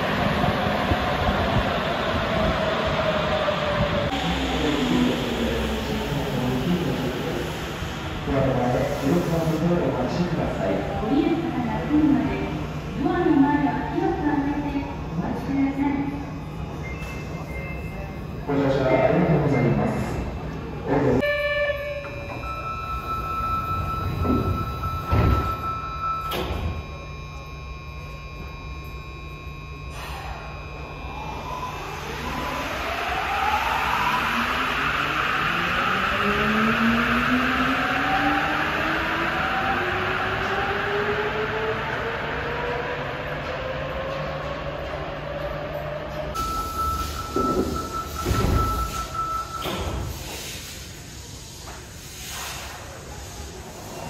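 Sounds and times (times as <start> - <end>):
steady electronic tone: 21.2 - 42.4
train motor inverter whine: 21.3 - 50.3.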